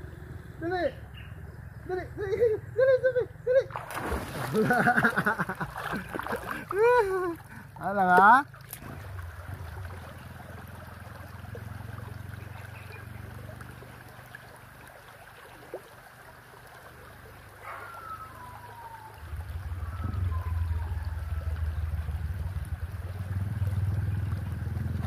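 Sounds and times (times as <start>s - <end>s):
creek water running over stones: 3.7s - 25.0s
short falling whistles: 19.8s - 21.0s.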